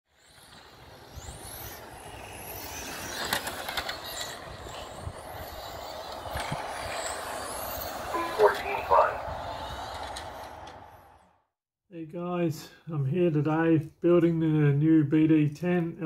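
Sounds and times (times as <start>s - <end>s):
outdoor rumble: 0.2s - 11.4s.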